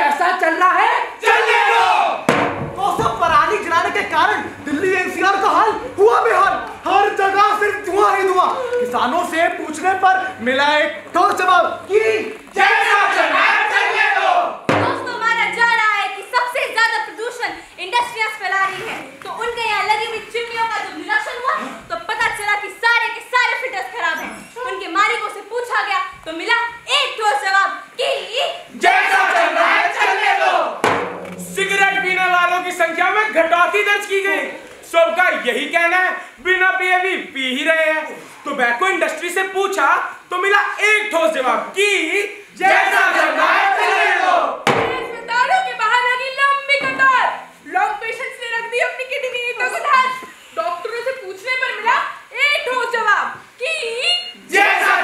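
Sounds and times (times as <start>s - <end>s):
young people shouting chant: 0.8s - 2.3s, 12.1s - 15.6s, 28.7s - 30.8s, 42.6s - 45.4s, 54.4s - 55.0s
drum beat: 2.2s - 8.5s, 11.0s - 16.4s, 30.8s - 33.9s, 44.6s - 45.6s
sharp impact: 2.3s - 3.1s, 14.7s - 16.5s, 30.8s - 33.7s, 44.7s - 45.7s.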